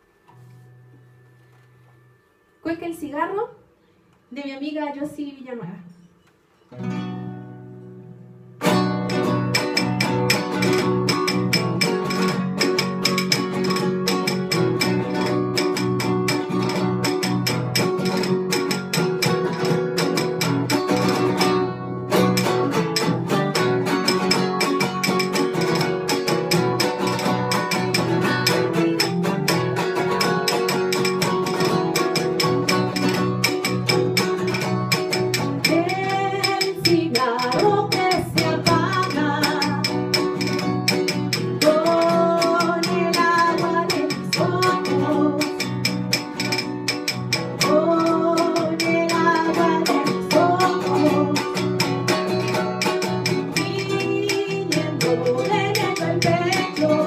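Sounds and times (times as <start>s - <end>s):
classical guitar strumming: 0.0s - 3.1s, 5.8s - 57.0s.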